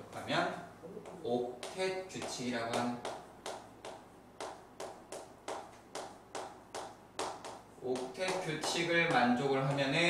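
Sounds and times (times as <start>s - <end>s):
chalk tapping on chalkboard: 1.0s - 10.0s.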